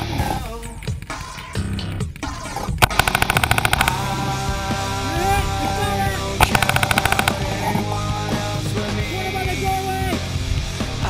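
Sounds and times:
rock music: 0.0s - 11.0s
paintball marker rapid pops: 0.9s - 4.1s, 6.4s - 7.6s.

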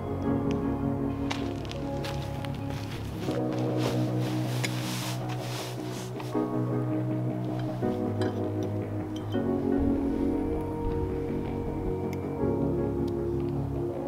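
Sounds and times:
music of sustained chords: 0.0s - 14.0s.

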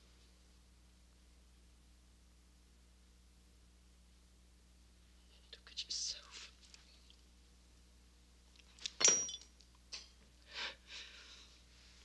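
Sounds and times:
low steady hum: 0.0s - 12.0s
person whispering: 5.2s - 6.6s.

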